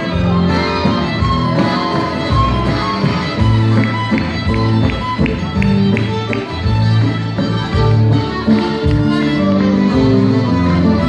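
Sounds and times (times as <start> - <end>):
accordion: 0.0 - 11.0
fiddle: 0.0 - 11.0
guitars: 0.0 - 11.0.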